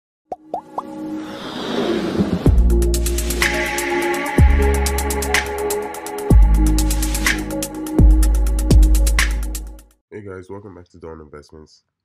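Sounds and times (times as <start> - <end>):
music and noise riser: 0.8 - 5.7.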